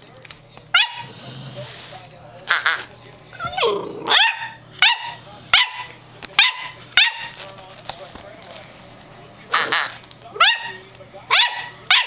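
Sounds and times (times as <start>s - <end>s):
squeaky puppy barks: 0.8s - 1.1s, 4.1s - 7.3s, 10.4s - 12.0s.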